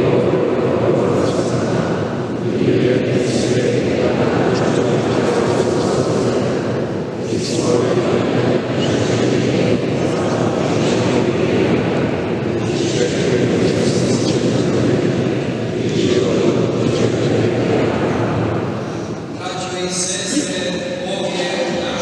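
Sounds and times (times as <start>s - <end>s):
congregation reciting in unison: 0.0s - 22.0s.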